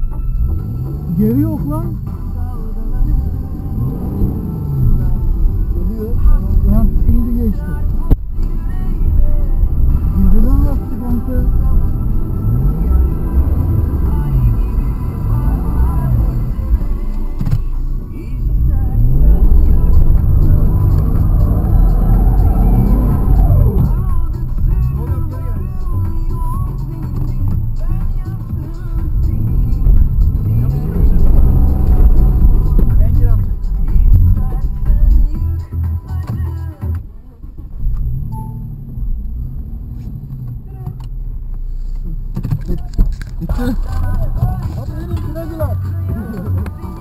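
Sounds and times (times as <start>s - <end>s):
music playing: 0.0s - 37.4s, 43.2s - 47.0s
car engine revving: 0.0s - 47.0s.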